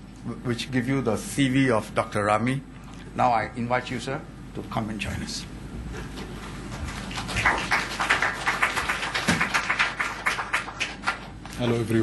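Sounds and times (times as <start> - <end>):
small audience applause: 6.7 - 11.4.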